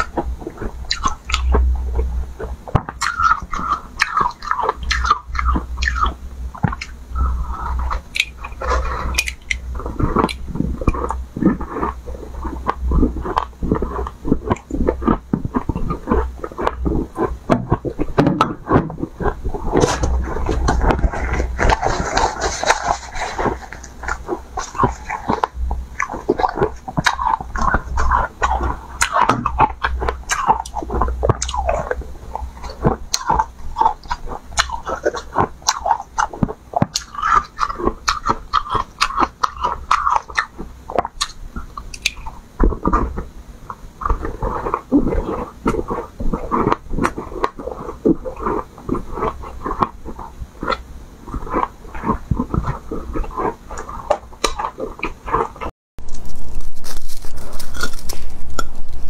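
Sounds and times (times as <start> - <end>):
low hum: 0.0 - 36.0.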